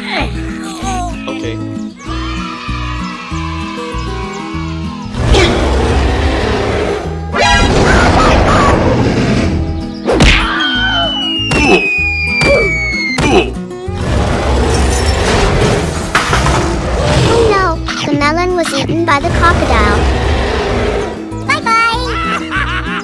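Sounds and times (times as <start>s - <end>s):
cartoon background music: 0.0s - 23.0s
whacks and crashes: 10.1s - 10.6s, 11.5s - 13.5s, 14.8s - 16.9s
long falling whistle: 10.6s - 13.2s.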